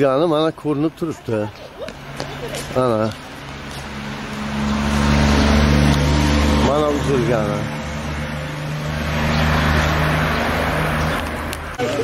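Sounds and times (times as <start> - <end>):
vehicle engine hum: 0.4 - 12.0.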